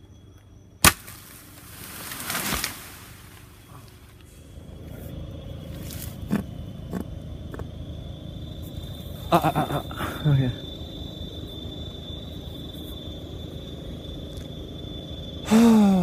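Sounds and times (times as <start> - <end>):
machete chopping wood: 0.8 - 1.3
leaves rustling: 0.8 - 6.4.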